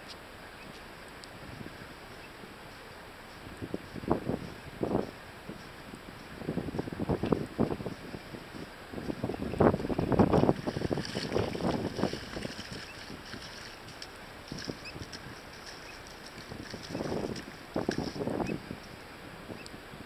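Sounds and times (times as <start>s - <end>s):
low steady hiss: 0.0s - 20.0s
wind buffeting microphone: 1.4s - 20.0s.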